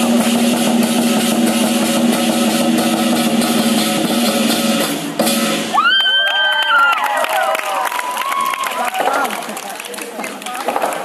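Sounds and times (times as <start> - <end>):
drum cymbals and gong roll: 0.0 - 5.9.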